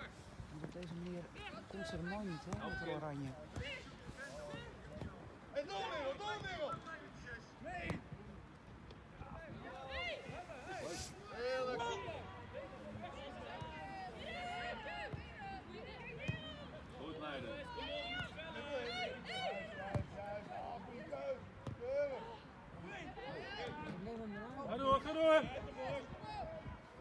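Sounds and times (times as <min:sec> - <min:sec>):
ball being kicked: 0:02.4 - 0:03.9
players and spectators shouting: 0:09.5 - 0:27.0.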